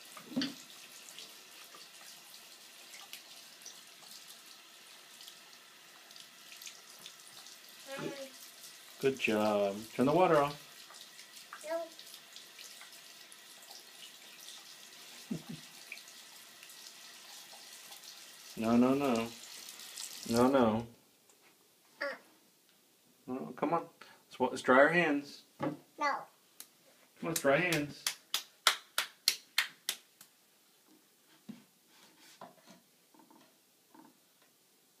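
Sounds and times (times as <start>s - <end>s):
faucet running water: 0.0s - 20.8s
faint scattered small sounds: 0.0s - 35.0s
toddler clapping wet hands: 27.4s - 30.3s.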